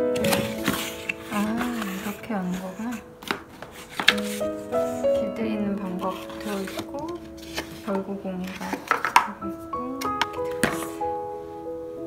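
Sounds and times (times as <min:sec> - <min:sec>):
background music with held notes: 0:00.0 - 0:12.0.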